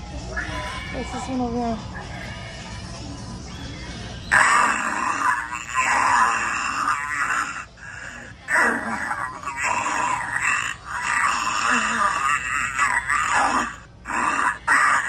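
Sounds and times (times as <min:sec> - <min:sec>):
harsh raspy voice: 0:04.3 - 0:15.0.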